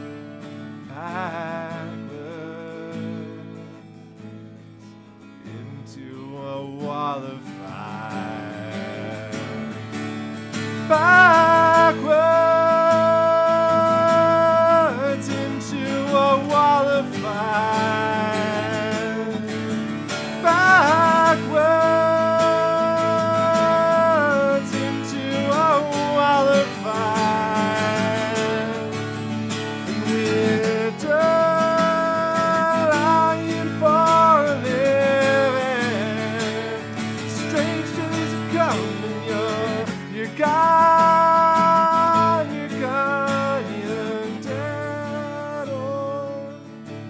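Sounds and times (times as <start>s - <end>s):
strummed acoustic guitar: 0.0s - 47.0s
man singing long notes: 0.9s - 3.8s, 5.5s - 29.2s, 29.9s - 46.6s.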